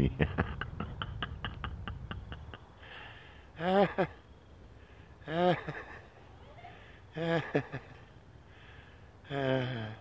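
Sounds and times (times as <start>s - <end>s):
man chuckling breathily: 0.0s - 4.2s, 7.1s - 10.0s.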